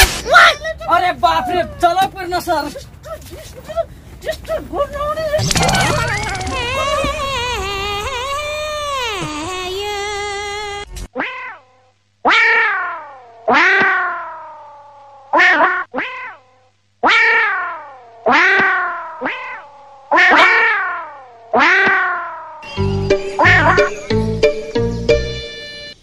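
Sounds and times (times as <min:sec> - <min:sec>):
cat meow sound effect: 0:05.4 - 0:08.2, 0:11.2 - 0:11.6, 0:12.3 - 0:22.6.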